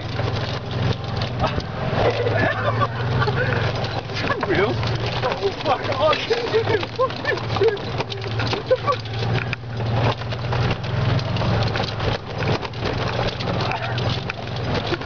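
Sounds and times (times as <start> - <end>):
cart body clattering and knocking: 0.0 - 15.0
golf cart motor hum: 0.0 - 15.0.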